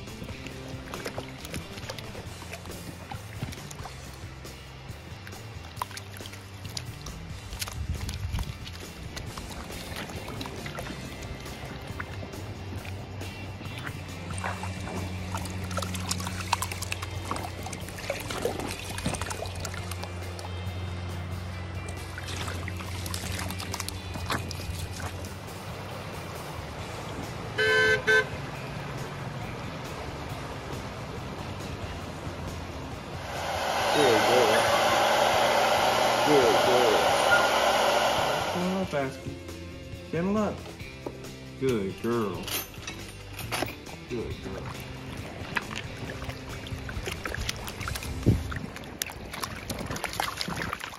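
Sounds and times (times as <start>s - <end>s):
flowing creek water: 0.0s - 40.0s, 43.9s - 50.9s
vehicle horn beeps: 27.6s - 28.4s
hair dryer blowing: 33.2s - 39.2s.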